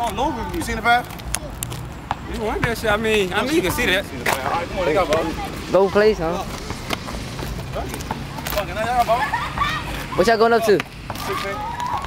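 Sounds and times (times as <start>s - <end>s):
basketball bouncing on asphalt: 0.0s - 9.7s, 10.6s - 12.0s
young men talking: 0.0s - 12.0s.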